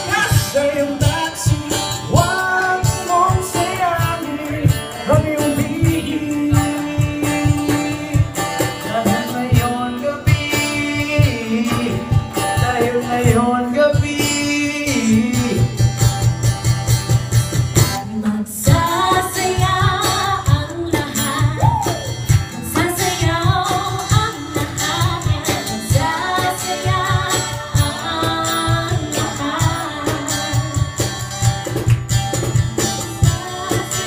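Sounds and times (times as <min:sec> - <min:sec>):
people singing pop song: 0:00.0 - 0:16.0, 0:17.9 - 0:34.0
backing track with beat: 0:00.0 - 0:34.0.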